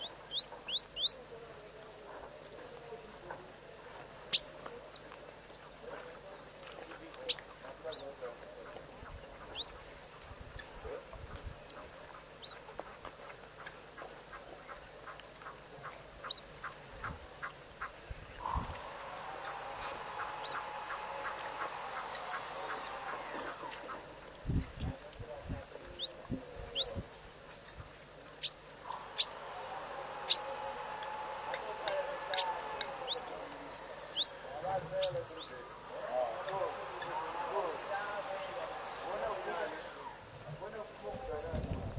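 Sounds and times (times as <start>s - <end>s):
birds calling: 0.0s - 1.3s, 4.2s - 24.9s, 25.8s - 40.3s.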